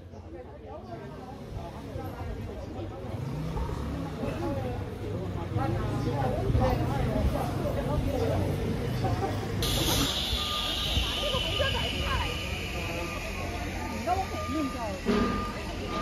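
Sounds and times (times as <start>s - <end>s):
low traffic rumble: 0.0s - 16.0s
people talking: 0.0s - 16.0s
high electronic warning beep: 9.6s - 16.0s.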